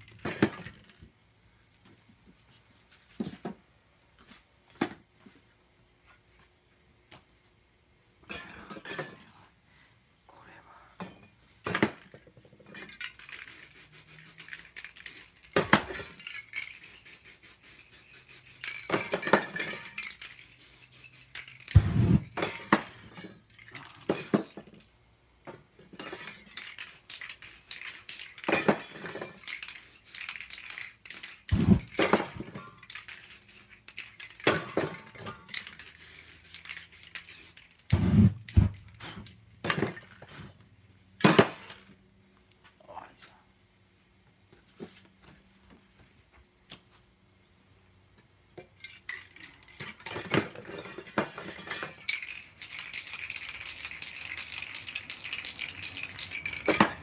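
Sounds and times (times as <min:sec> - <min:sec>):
metallic clinks of cans set down: 0:11.0 - 0:13.7, 0:14.3 - 0:17.1, 0:18.4 - 0:25.0, 0:25.8 - 0:40.6, 0:48.6 - 0:57.0
spray paint can hissing: 0:13.0 - 0:22.5, 0:26.5 - 0:28.8, 0:29.4 - 0:32.2, 0:32.8 - 0:34.5, 0:35.5 - 0:39.0, 0:52.0 - 0:56.9.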